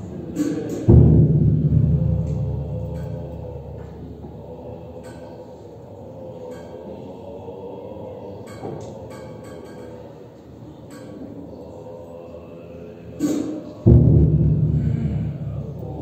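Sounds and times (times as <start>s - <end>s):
low ritual chanting drone: 0.0s - 16.0s
heavy ringing percussion strike: 0.9s - 5.6s, 13.9s - 16.0s.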